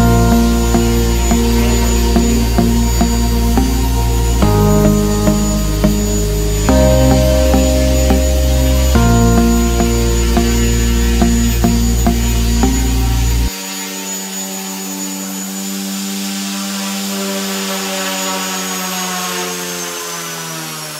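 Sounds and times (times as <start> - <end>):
background music with steady beat: 0.0 - 13.5.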